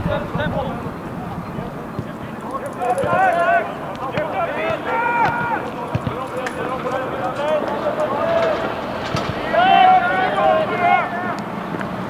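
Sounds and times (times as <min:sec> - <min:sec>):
footballers shouting: 0:00.0 - 0:12.0.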